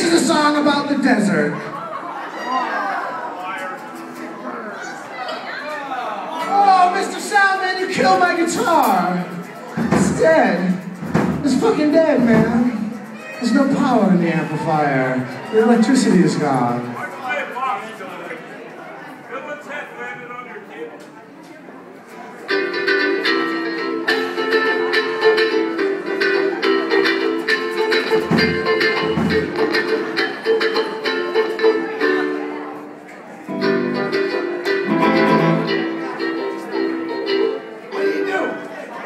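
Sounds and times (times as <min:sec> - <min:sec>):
live band playing: 0:00.0 - 0:05.7, 0:06.3 - 0:17.6, 0:22.0 - 0:39.0.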